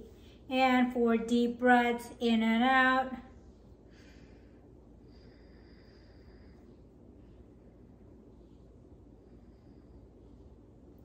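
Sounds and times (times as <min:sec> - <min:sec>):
low room hum: 0:00.0 - 0:11.0
woman breathing deeply: 0:03.3 - 0:11.0.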